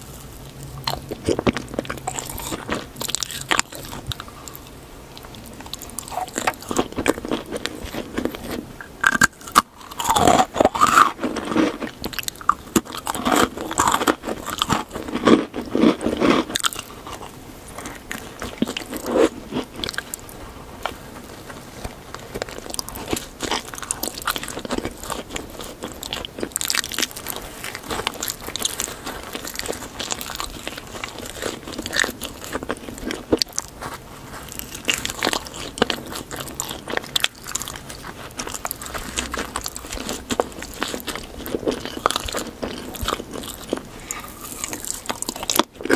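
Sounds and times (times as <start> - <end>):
crunchy chewing of a cookie: 0.0 - 45.9.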